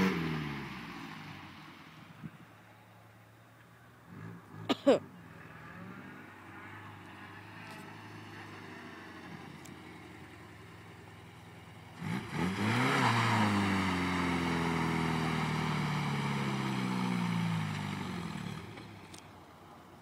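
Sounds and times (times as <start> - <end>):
car engine revving: 0.0 - 1.8, 4.1 - 19.2
spinning tyres rushing: 0.0 - 20.0.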